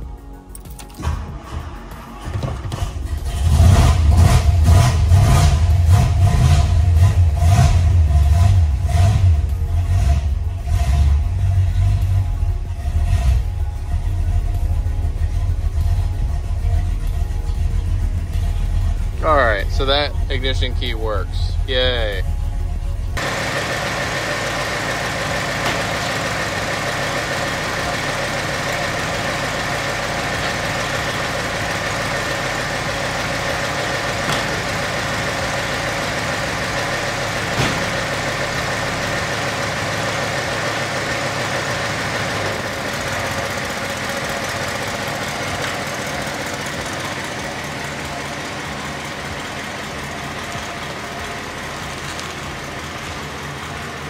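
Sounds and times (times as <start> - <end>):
car engine running: 1.0 - 54.0.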